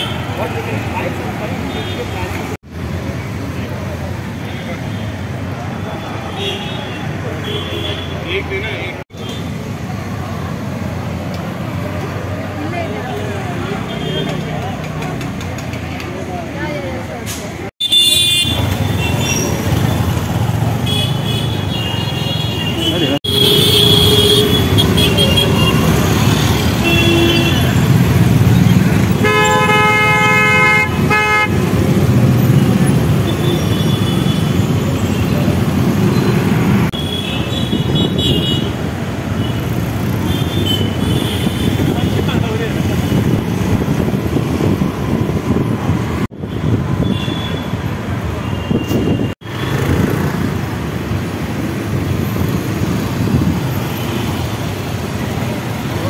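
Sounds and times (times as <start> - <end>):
street traffic: 0.0 - 56.0
crowd chatter: 9.8 - 17.7
vehicle horns honking: 17.8 - 20.0, 20.8 - 28.1, 29.0 - 31.7, 36.1 - 38.8, 39.4 - 42.3, 46.4 - 49.9.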